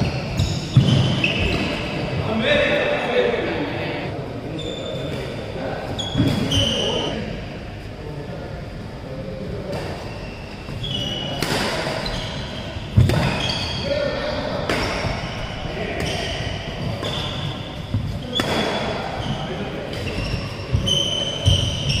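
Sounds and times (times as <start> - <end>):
shoes squeaking on court floor: 0.0 - 2.2, 4.6 - 5.3, 5.9 - 7.1, 10.0 - 11.4, 12.0 - 13.9, 15.0 - 22.0
racket hitting shuttlecock: 11.4 - 12.0, 12.9 - 13.6, 18.3 - 18.9.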